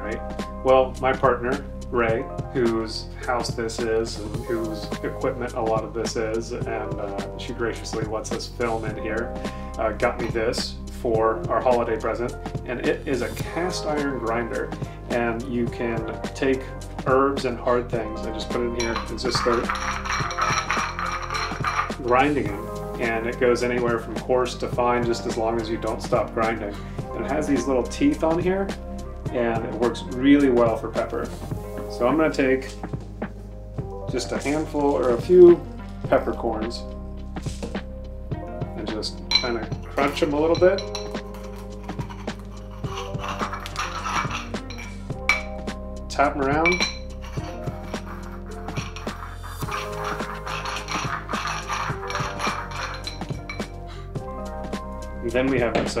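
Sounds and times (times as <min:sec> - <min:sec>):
background music: 0:00.0 - 0:56.0
metal grinder clicking: 0:18.9 - 0:22.1, 0:40.9 - 0:45.5, 0:47.2 - 0:53.7
pepper grinder clicking and crunching: 0:48.1 - 0:53.4.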